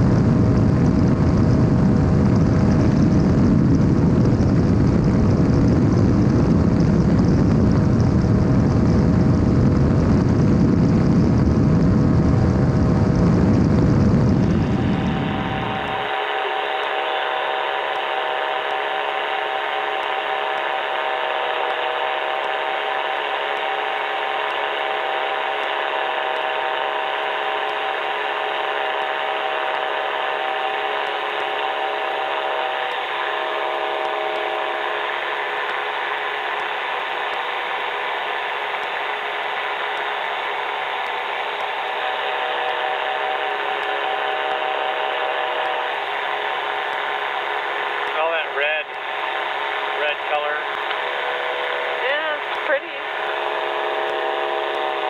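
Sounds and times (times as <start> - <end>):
wind noise: 0.0 - 16.1
light aircraft engine and propeller: 0.0 - 55.0.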